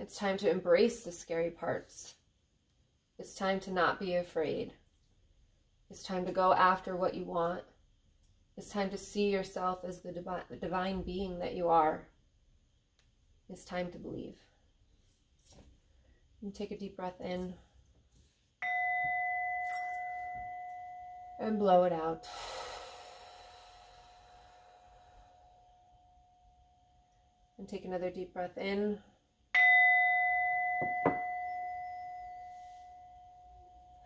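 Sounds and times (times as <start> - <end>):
singing bowl ringing: 18.6 - 22.4, 24.6 - 27.6, 29.5 - 34.0.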